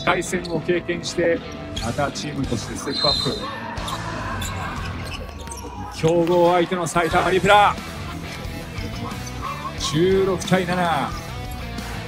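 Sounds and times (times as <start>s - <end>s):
voices: 1.9s - 11.4s.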